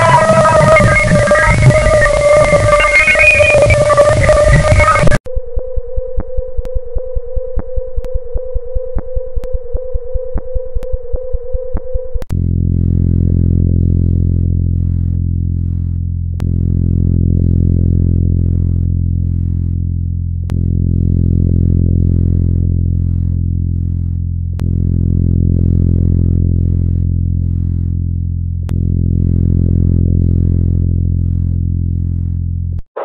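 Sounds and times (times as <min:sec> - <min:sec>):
low hum rich in overtones: 0:00.0 - 0:33.0.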